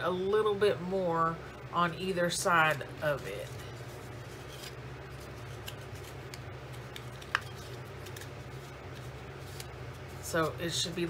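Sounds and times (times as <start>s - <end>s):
steady low hum: 0.0s - 11.0s
paper rustling and creasing: 2.6s - 11.0s.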